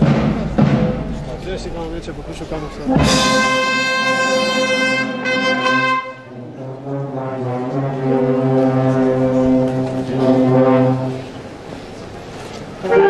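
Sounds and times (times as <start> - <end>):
wind band playing funeral march: 0.0 - 13.0.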